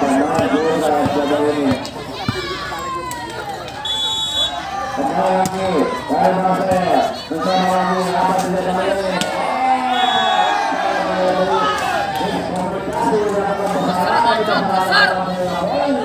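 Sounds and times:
crowd talking and shouting: 0:00.0 - 0:16.0.

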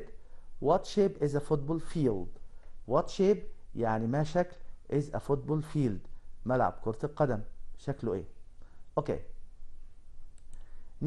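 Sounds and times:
man speaking: 0:00.0 - 0:08.3, 0:09.0 - 0:09.4
low steady hum: 0:00.0 - 0:11.0
faint clicks: 0:10.2 - 0:10.8.

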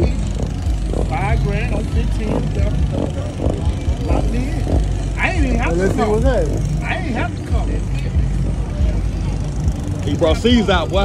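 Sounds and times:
low engine rumble: 0:00.0 - 0:11.0
unclear talking: 0:00.0 - 0:11.0.

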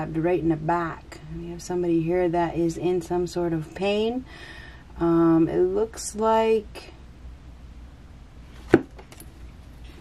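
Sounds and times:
low room hum: 0:00.0 - 0:10.0
card tapping on table: 0:08.7 - 0:09.0.

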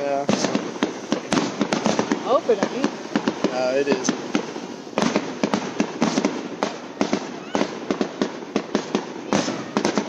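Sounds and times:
fireworks popping and cracking: 0:00.0 - 0:10.0.

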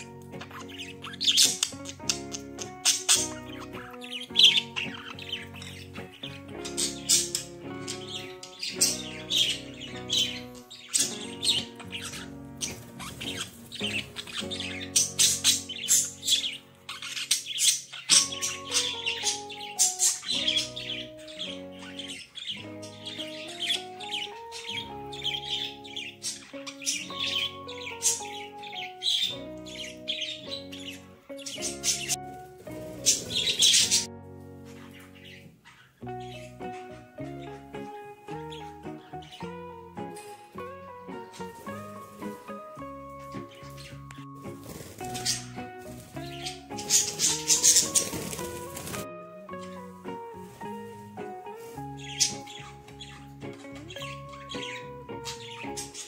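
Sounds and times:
budgerigars chirping and squawking: 0:00.0 - 0:56.0
gentle melodic background music: 0:00.0 - 0:56.0.

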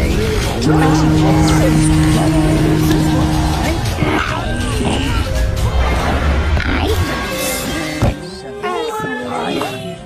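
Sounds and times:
cartoon music: 0:00.6 - 0:05.6
low held tone: 0:00.6 - 0:05.7.

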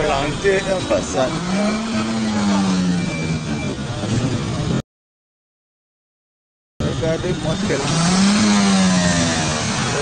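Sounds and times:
car engine revving: 0:00.0 - 0:04.8, 0:06.9 - 0:10.0
loud background noise: 0:00.0 - 0:04.8, 0:06.8 - 0:10.0.

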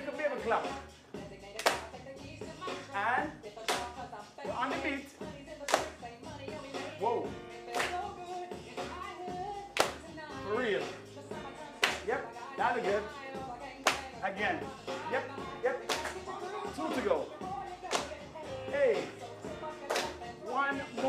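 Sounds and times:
upbeat music with singing: 0:00.0 - 0:21.0
group hand claps: 0:01.6 - 0:02.0, 0:03.6 - 0:04.1, 0:05.6 - 0:06.1, 0:07.7 - 0:08.2, 0:09.7 - 0:10.1, 0:11.8 - 0:12.2, 0:13.8 - 0:14.2, 0:15.7 - 0:17.2, 0:17.9 - 0:18.3, 0:19.8 - 0:21.0.

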